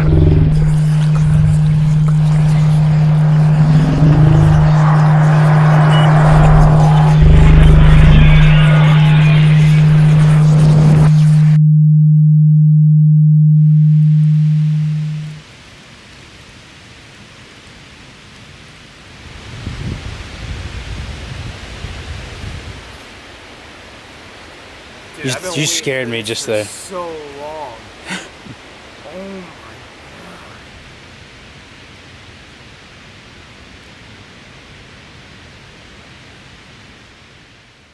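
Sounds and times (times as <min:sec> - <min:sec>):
heavy low thuds: 0:00.0 - 0:04.8, 0:06.1 - 0:11.6
faint outdoor ambience: 0:00.0 - 0:11.6, 0:14.9 - 0:37.9
wash of noise: 0:00.0 - 0:11.6
loud low drone: 0:00.0 - 0:15.4.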